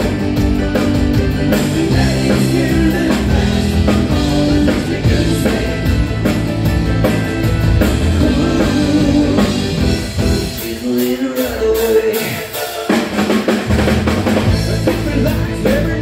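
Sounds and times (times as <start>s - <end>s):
person singing: 0.0s - 6.4s, 7.8s - 13.6s, 14.4s - 16.0s
live rock band playing: 0.0s - 16.0s.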